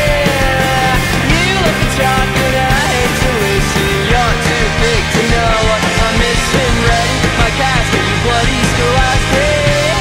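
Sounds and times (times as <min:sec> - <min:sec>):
indie rock band music: 0:00.0 - 0:10.0.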